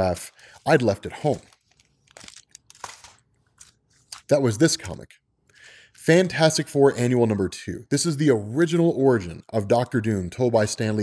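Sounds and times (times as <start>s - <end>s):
plastic sleeve crinkling: 0.1s - 4.4s.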